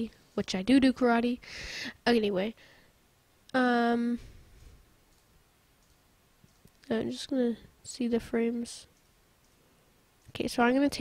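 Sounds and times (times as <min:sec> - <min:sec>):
computer mouse clicks: 0:05.1 - 0:06.9, 0:08.9 - 0:09.6.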